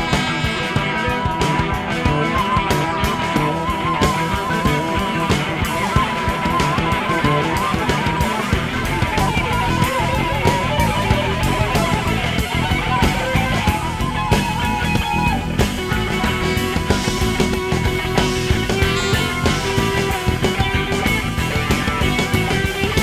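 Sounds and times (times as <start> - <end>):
busy drumming: 0.0 - 23.0
electric bass: 0.0 - 23.0
electric guitars: 0.0 - 23.0
rock band playing: 0.0 - 23.0.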